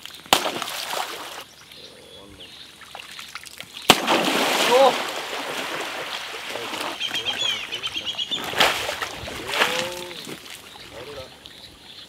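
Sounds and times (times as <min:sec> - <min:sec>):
water sloshing and splashing: 0:00.0 - 0:01.5, 0:02.8 - 0:11.6
birds chirping: 0:01.1 - 0:12.0
lower bird call: 0:06.7 - 0:12.0.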